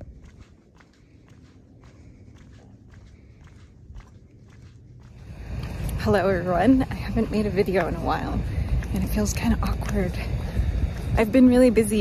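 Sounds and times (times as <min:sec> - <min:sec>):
footsteps on paved path: 0:00.0 - 0:12.0
low rumble: 0:00.0 - 0:12.0.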